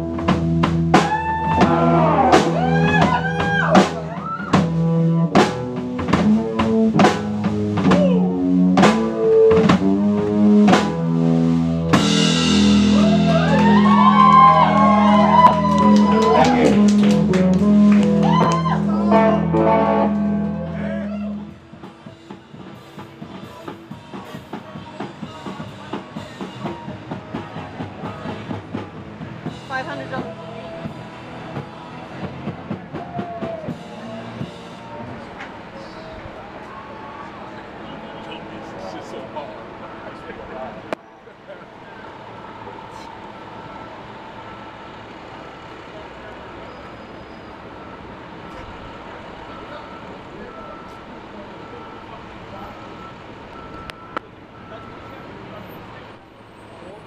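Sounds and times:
live rock band playing: 0:00.0 - 0:39.8
drums beating steadily: 0:00.0 - 0:40.9
indistinct voices: 0:00.0 - 0:57.0
traffic: 0:00.0 - 0:57.0.

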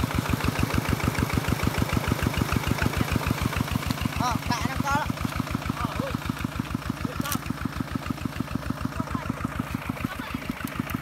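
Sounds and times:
diesel engine running: 0:00.0 - 0:11.0.

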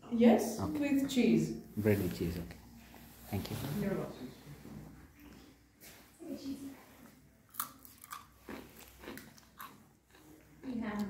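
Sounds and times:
crunchy snack being chewed: 0:07.5 - 0:11.0.

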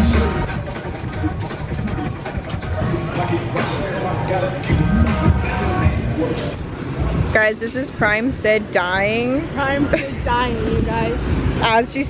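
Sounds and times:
treadmill motor and belt running: 0:00.0 - 0:03.4.

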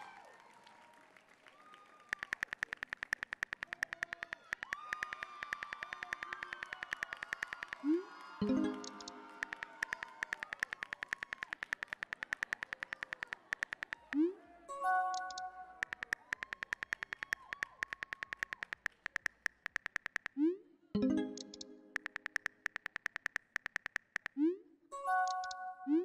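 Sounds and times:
phone keyboard clicks: 0:02.1 - 0:14.2, 0:15.0 - 0:20.4, 0:21.3 - 0:24.4, 0:25.2 - 0:25.6.

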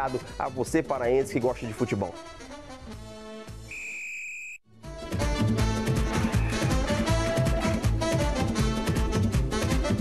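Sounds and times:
upbeat music: 0:00.0 - 0:03.7, 0:04.8 - 0:10.0.

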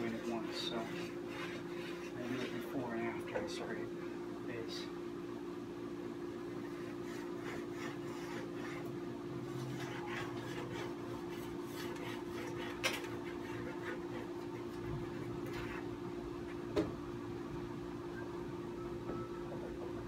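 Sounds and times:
scraper rasping along ski edge: 0:00.0 - 0:02.8, 0:06.6 - 0:08.9
steady low hum: 0:00.0 - 0:20.0.

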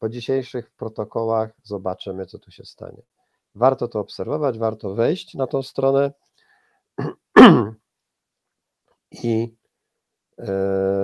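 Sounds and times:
man clearing his throat: 0:07.0 - 0:07.8.

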